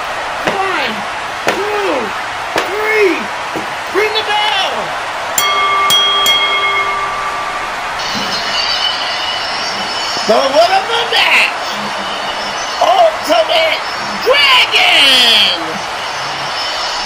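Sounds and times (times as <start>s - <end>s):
ring bell ringing: 5.4s - 10.0s.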